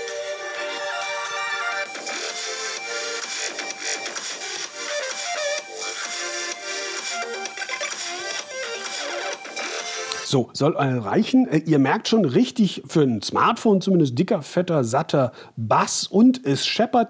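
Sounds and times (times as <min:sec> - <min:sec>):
music from phone speakers: 0:00.0 - 0:10.3.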